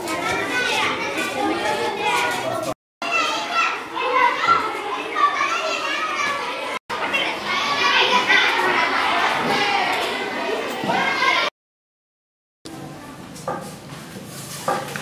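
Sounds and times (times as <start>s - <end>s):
children chattering: 0.0s - 11.5s.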